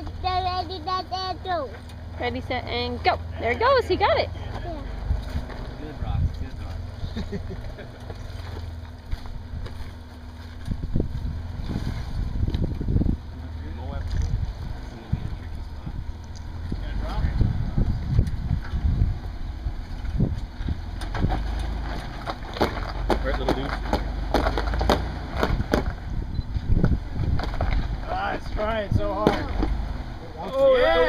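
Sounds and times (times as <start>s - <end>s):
truck engine low rumble: 0.0s - 31.0s.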